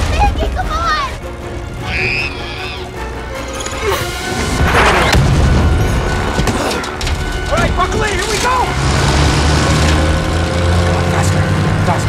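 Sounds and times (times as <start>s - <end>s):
film music: 0.0s - 12.0s.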